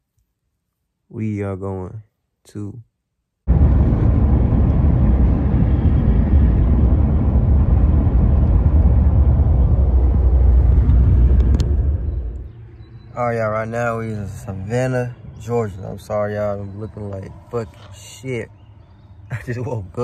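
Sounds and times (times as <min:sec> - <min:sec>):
car road and engine rumble: 0:03.5 - 0:20.0.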